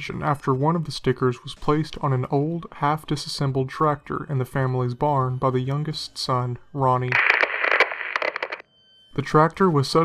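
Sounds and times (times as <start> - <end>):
crackling hissy noise: 7.1 - 8.6
irregular clicks: 7.2 - 8.6.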